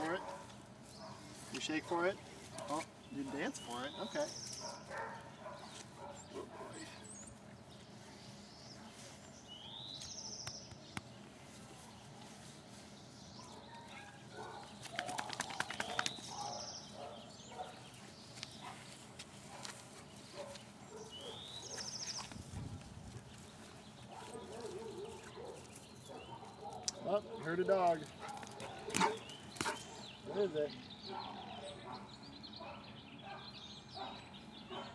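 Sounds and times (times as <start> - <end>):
bird song with buzzy trill: 2.7 - 12.1, 12.8 - 19.0, 20.0 - 34.9.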